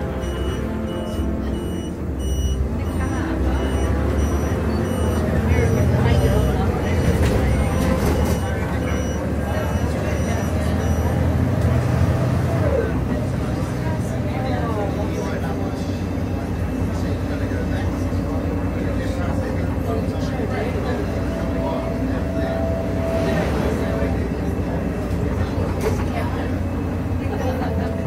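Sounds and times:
bus engine and road noise: 0:00.0 - 0:28.0.

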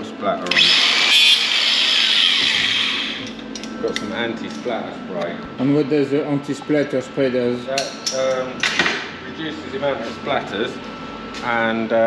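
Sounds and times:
angle grinder grinding metal: 0:00.5 - 0:03.4
grinder spinning down whine: 0:00.5 - 0:03.4.

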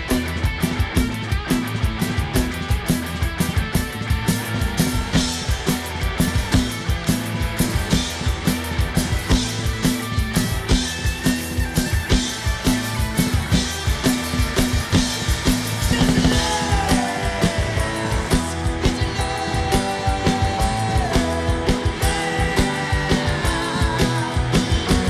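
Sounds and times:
drum kit beat: 0:00.0 - 0:25.0
rock band playing: 0:00.0 - 0:25.0.

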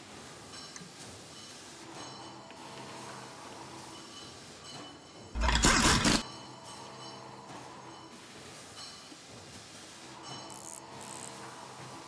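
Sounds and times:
loud rumbling rubbing noise: 0:05.4 - 0:06.2.

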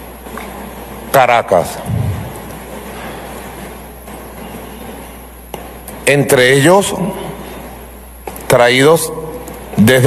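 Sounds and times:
background hiss: 0:00.0 - 0:10.0
low hum: 0:01.6 - 0:05.4.

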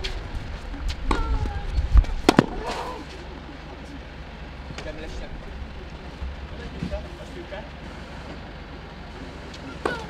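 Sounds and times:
low rumble: 0:00.0 - 0:08.0
tennis ball struck with racket: 0:01.0 - 0:03.2, 0:09.6 - 0:10.0.

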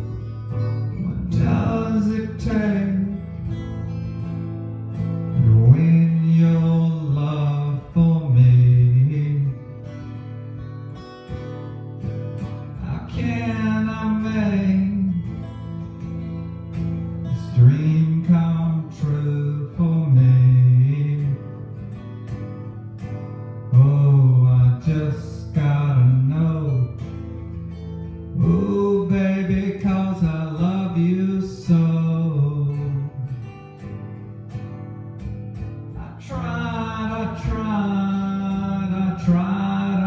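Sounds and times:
acoustic guitar: 0:00.0 - 0:40.0
electric guitar: 0:00.0 - 0:40.0.

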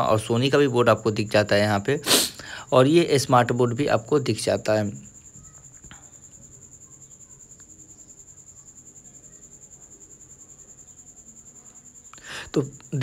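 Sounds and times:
insect trilling: 0:00.0 - 0:13.0
faint click: 0:07.6 - 0:07.8.

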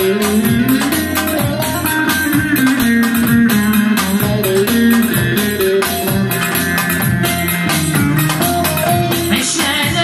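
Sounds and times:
saz folk melody: 0:00.0 - 0:10.0.

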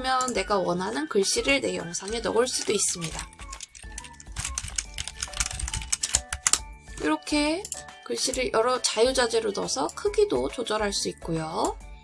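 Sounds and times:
background music: 0:00.0 - 0:12.0
keyboard key clicks: 0:03.0 - 0:06.7.

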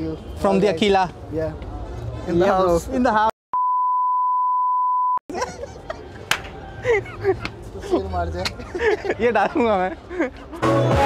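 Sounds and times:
men talking: 0:00.0 - 0:03.3, 0:06.2 - 0:10.4
censor bleep: 0:03.6 - 0:05.2
men laughing: 0:05.3 - 0:10.9.

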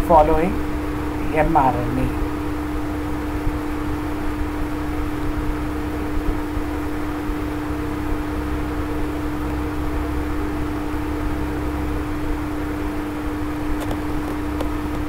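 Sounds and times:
droning tone: 0:00.0 - 0:15.0.

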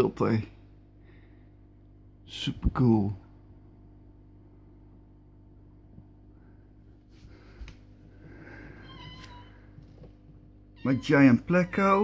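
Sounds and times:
cat meowing: 0:08.8 - 0:09.7, 0:10.8 - 0:12.0.

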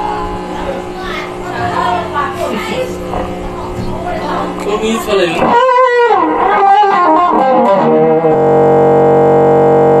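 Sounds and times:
buzzy held tone: 0:00.0 - 0:10.0.

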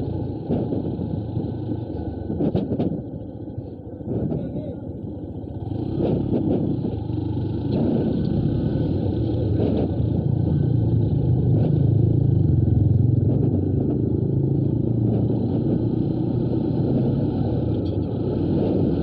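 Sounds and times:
motorcycle engine running: 0:00.0 - 0:19.0.

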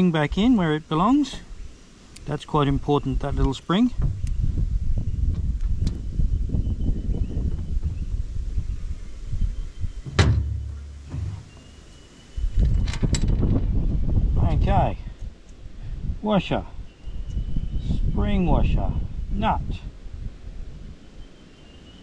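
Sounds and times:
wind rumbling on microphone: 0:00.0 - 0:21.3.

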